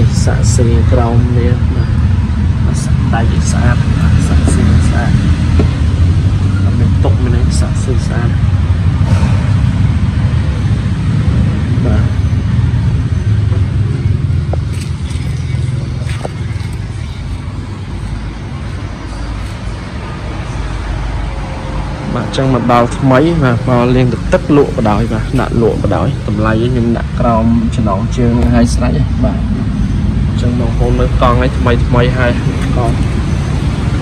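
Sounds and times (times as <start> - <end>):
vehicle engine humming: 0.0 - 34.0.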